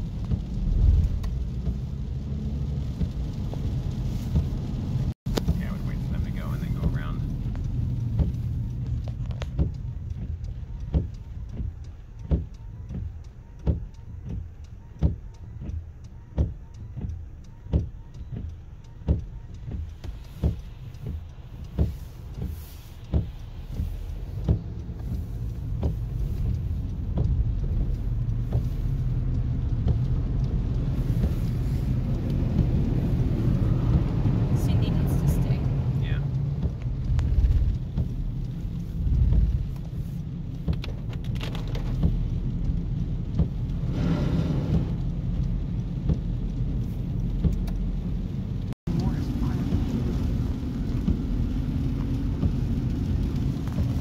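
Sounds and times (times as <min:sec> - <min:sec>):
engine and road rumble: 0:00.0 - 0:54.0
rain and wet tyres rushing: 0:00.0 - 0:54.0
windshield wipers thumping: 0:00.0 - 0:54.0.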